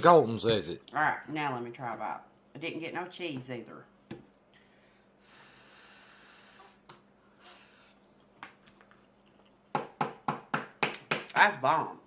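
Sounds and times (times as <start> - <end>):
breathy exhales while chewing: 4.5 - 8.3.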